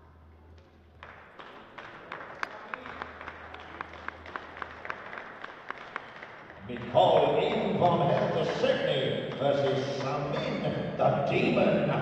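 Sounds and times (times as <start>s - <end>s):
crowd applauding: 0.9s - 12.0s.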